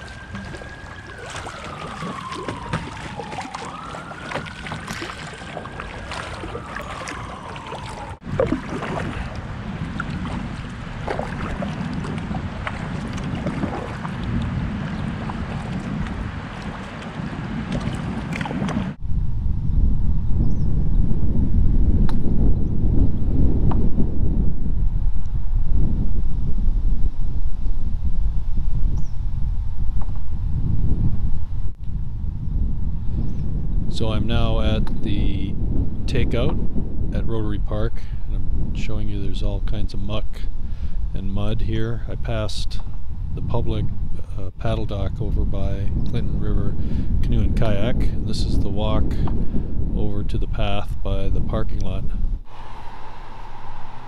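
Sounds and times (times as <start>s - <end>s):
drips and clicks: 0.0s - 18.8s
water lapping and splashing: 0.0s - 19.0s
wind rumble on microphone: 0.0s - 54.0s.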